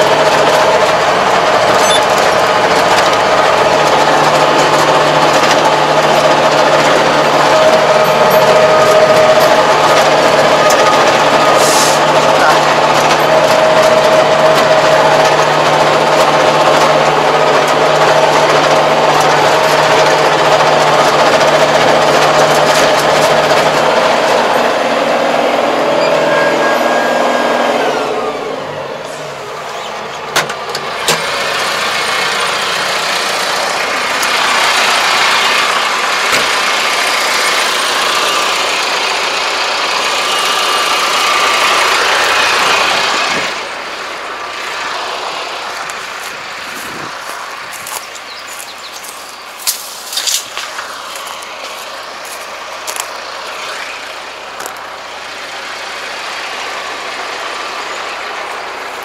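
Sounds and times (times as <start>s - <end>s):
rotary tiller working soil: 0.0s - 59.0s
tractor engine running under load: 0.0s - 59.0s.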